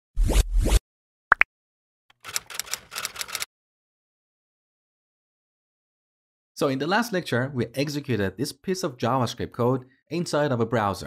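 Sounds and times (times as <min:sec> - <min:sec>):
typewriter clicks: 0:02.1 - 0:03.5.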